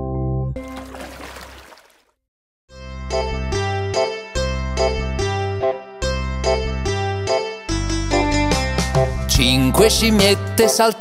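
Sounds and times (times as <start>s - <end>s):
soft water-like rushing: 0.6s - 2.1s.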